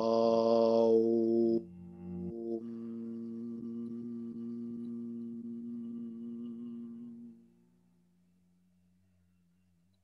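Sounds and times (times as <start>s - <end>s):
man chanting om: 0.0s - 7.5s.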